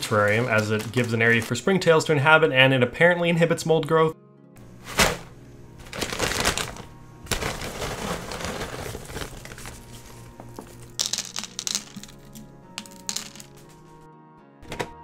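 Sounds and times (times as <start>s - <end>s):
charcoal lumps rattling: 0.0s - 1.6s, 4.8s - 13.7s
plastic bag crinkling: 0.0s - 1.7s, 5.8s - 13.6s
background music: 0.0s - 15.0s.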